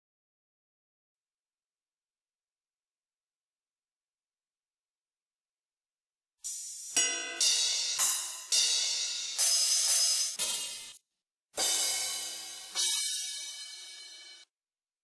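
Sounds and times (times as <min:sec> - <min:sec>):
drum machine cymbal strikes: 0:06.4 - 0:11.0, 0:11.6 - 0:14.4.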